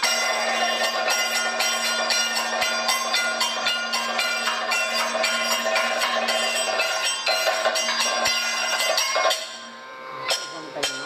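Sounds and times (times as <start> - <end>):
bell-metal cymbals struck rhythmically: 0.0 - 11.0.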